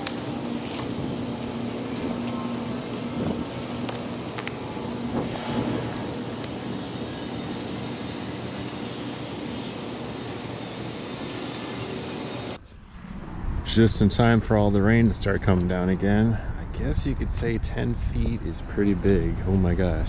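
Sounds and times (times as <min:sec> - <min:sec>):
distant traffic: 0:00.0 - 0:20.0
low hum: 0:00.0 - 0:20.0
wind: 0:00.0 - 0:20.0.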